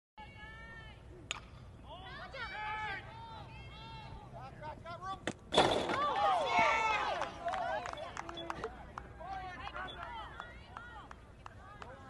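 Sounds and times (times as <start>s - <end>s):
bat cracking against ball: 1.3s - 1.6s.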